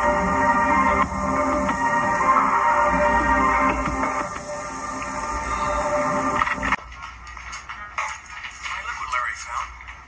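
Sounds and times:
dramatic score music: 0.0s - 6.8s
voices from television: 4.1s - 10.0s.

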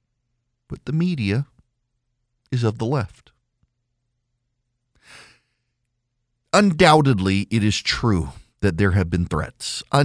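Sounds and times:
man breathing in: 5.0s - 5.8s.

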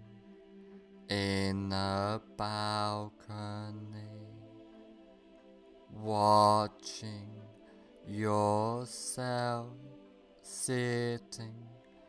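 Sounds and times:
faint musical drone: 0.0s - 12.0s
man chanting long syllables: 1.1s - 4.5s, 5.9s - 11.8s.

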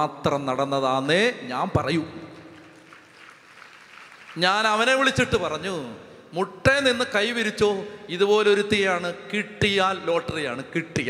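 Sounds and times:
man preaching over loudspeaker: 0.0s - 2.4s, 4.4s - 11.0s.

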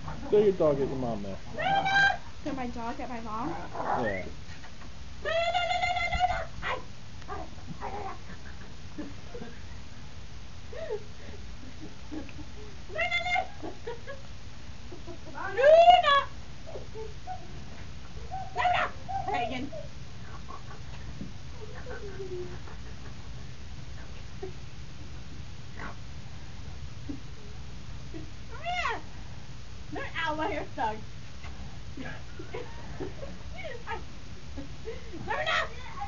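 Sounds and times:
puppy whining: 1.5s - 2.3s, 3.5s - 4.4s, 5.2s - 8.6s, 15.6s - 20.8s.

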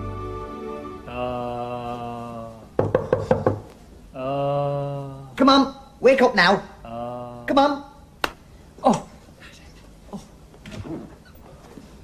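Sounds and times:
music chord: 0.0s - 1.8s
man saying uh: 1.1s - 2.7s, 6.8s - 7.8s
knuckles knocking on hard surface: 2.8s - 3.7s.

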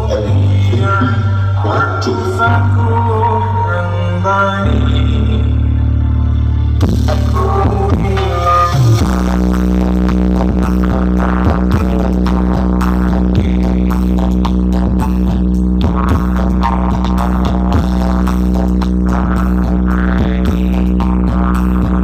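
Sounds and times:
loud music with deep bass: 0.0s - 22.0s.

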